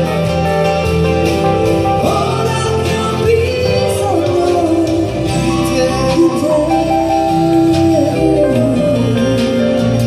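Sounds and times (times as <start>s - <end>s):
keyboard sustained notes: 0.0s - 10.0s.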